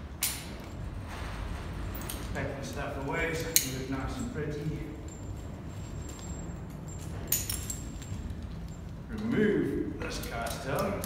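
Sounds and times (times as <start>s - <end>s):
metal carabiners clinking: 0.0s - 11.0s.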